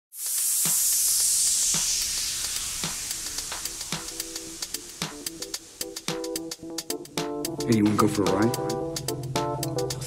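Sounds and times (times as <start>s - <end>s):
white-noise hiss: 0.2s - 7.2s
faint hi-hat ticks: 0.3s - 7.8s.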